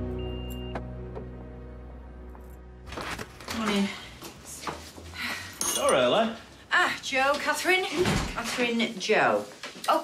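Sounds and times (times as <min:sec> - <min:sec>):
low sustained music chords: 0:00.0 - 0:02.8.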